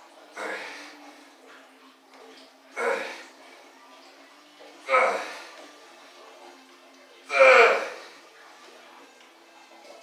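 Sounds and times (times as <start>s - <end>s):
man grunting: 7.3s - 8.0s.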